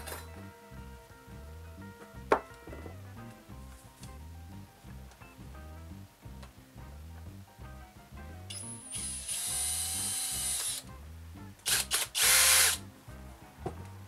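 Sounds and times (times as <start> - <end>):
cordless drill running: 8.5 - 10.8, 11.7 - 12.8.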